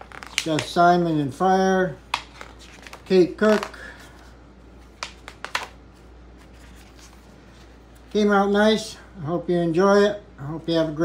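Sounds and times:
magazine pages flipping: 0:00.0 - 0:01.1, 0:02.0 - 0:08.2.

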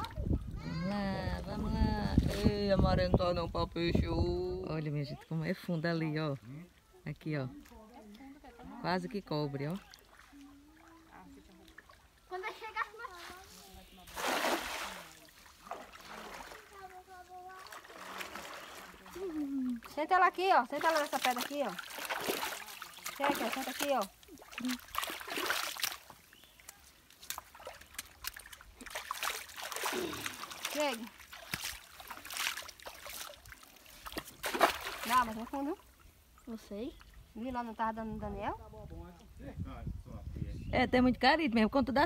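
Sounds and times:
water sloshing: 0:06.2 - 0:37.7
loud splash in river water: 0:14.1 - 0:16.7, 0:21.0 - 0:23.6, 0:28.8 - 0:33.4, 0:34.1 - 0:35.4.

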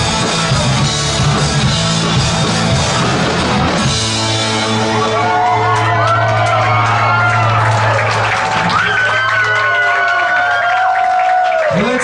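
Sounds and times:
rock band holding chord: 0:00.0 - 0:08.7
crowd whooping and shouting: 0:03.6 - 0:12.0.

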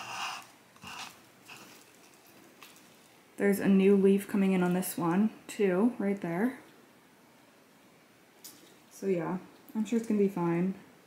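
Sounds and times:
leaves rustling: 0:00.0 - 0:03.4.

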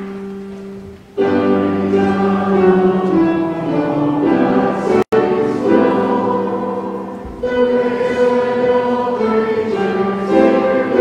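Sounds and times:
choir and congregation singing hymn: 0:01.2 - 0:11.0.

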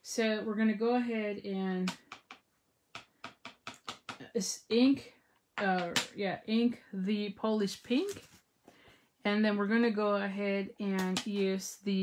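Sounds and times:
rubber stamp taps and clicks: 0:01.9 - 0:04.2.

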